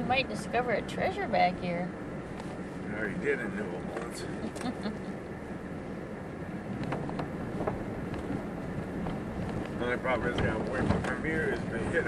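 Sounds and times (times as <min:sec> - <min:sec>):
truck engine and tyres rumbling: 0:00.0 - 0:12.0
light knocks and rattles: 0:06.8 - 0:12.0.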